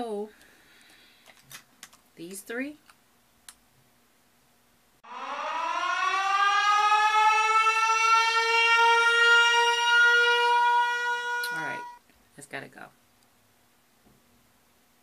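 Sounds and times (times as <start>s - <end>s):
air-raid siren: 5.0s - 12.0s.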